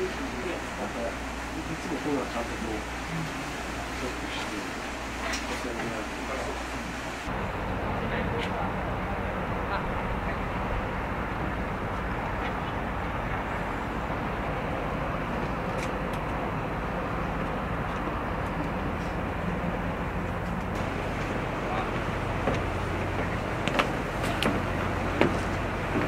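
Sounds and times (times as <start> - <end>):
faint voices: 0.0 - 14.4
low machinery drone: 0.0 - 26.0
rushing noise: 0.0 - 26.0.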